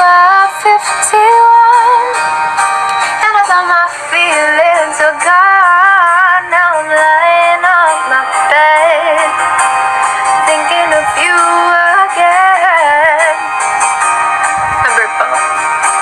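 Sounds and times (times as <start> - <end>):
woman singing: 0.0 - 2.2, 3.1 - 9.4, 10.4 - 13.4.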